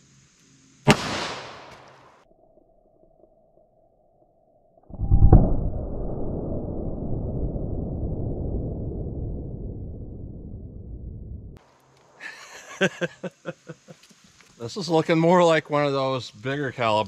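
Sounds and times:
revolver shot: 0.9 - 2.1
deep slowed-down rumble: 4.8 - 11.6.

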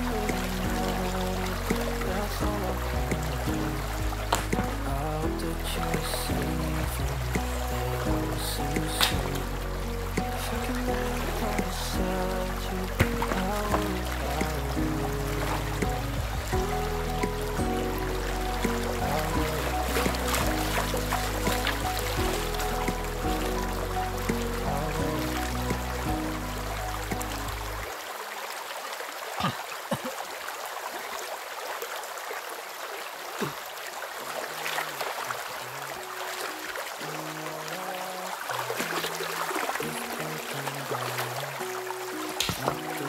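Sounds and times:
background music with bass line: 0.0 - 27.9
shallow river water rushing: 0.0 - 43.0
water splashes: 0.0 - 43.0.

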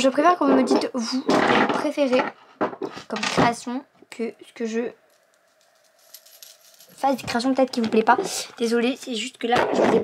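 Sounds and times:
small hard objects rattling: 5.1 - 10.0.

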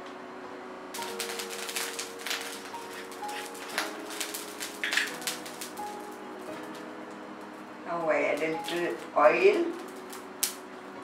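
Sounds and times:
soft background music: 0.0 - 11.0
oil crackling in a wok: 1.0 - 10.7.

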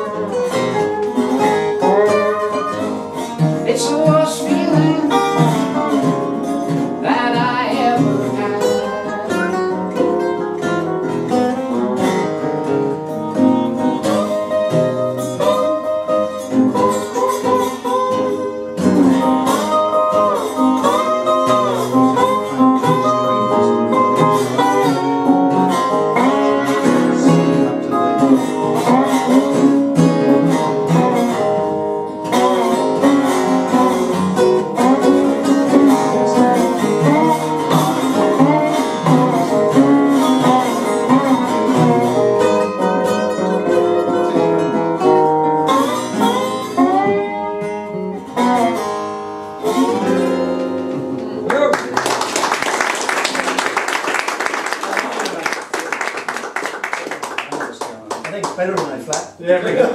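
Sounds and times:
acoustic string band playing: 0.0 - 55.0.

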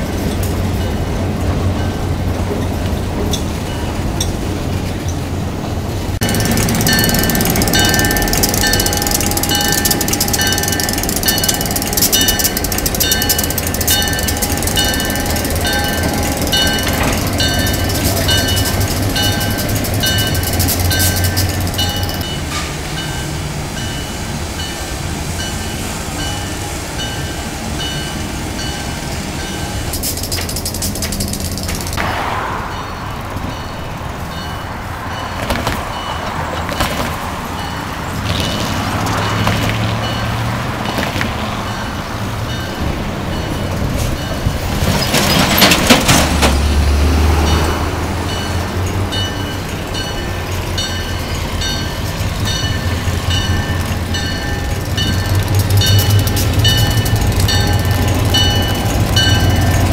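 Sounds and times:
diesel locomotive engine rumble: 0.0 - 59.9
locomotive bell ringing: 0.0 - 59.9
railroad cars rolling on rails: 0.0 - 59.9.

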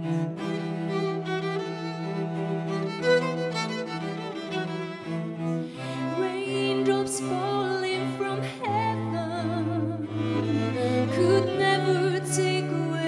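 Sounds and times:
bowed strings holding long notes: 0.0 - 13.0
low sustained bass line: 8.7 - 13.0.

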